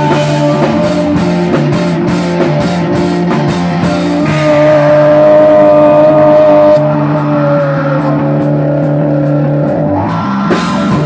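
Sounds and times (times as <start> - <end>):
bass guitar sustained notes: 0.0 - 11.0
distorted electric guitars: 0.0 - 11.0.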